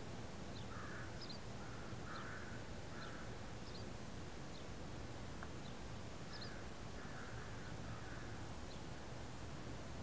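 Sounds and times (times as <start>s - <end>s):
harsh bird calls: 0.5s - 3.9s, 5.6s - 8.9s.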